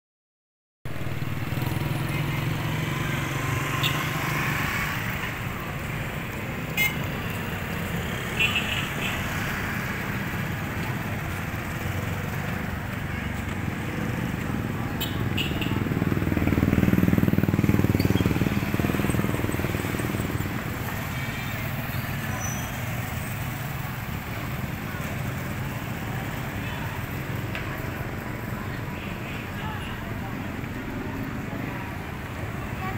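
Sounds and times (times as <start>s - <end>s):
street traffic hum: 0.9s - 32.9s
small motorcycle passing close: 15.9s - 20.6s.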